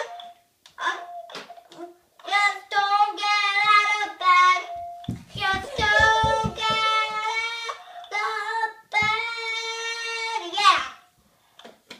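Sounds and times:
girl singing: 2.2 - 11.2
low thuds: 4.8 - 7.2.

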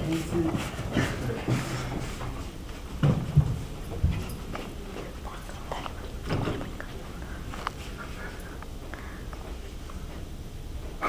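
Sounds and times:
footsteps on hard floor: 0.3 - 5.1.

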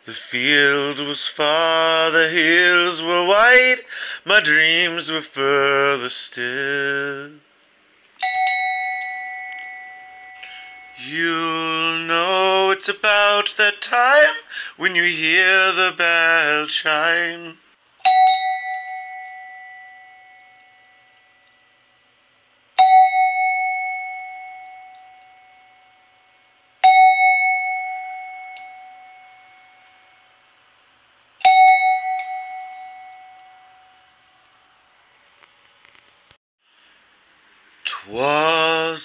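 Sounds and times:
copper bell ringing: 8.2 - 12.3, 18.0 - 21.8, 22.8 - 30.4, 31.4 - 34.2.

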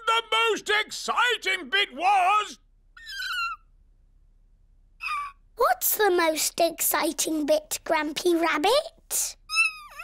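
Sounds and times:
cartoon character high squeak: 3.0 - 3.7, 9.5 - 10.0.

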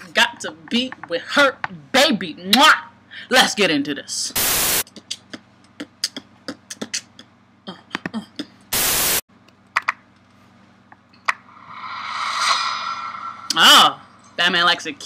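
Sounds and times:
tv static hiss: 4.3 - 4.8, 8.7 - 9.2
layered swell of sound: 11.3 - 15.0.

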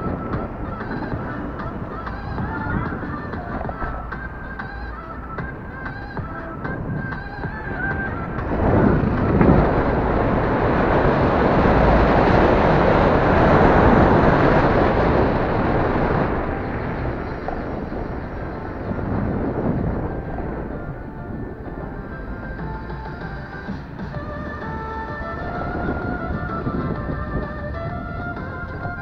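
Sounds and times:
wind and road noise: 0.0 - 29.0.

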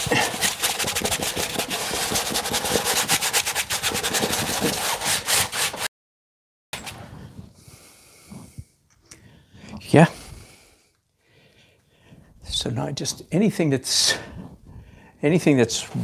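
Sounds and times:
paintbrush scrubbing on canvas: 0.0 - 5.9.

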